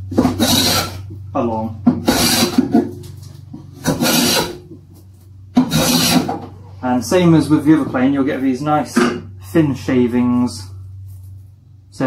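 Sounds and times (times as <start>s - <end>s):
plane shaving wood: 0.0s - 1.1s, 2.0s - 2.9s, 3.7s - 4.6s, 5.6s - 6.5s.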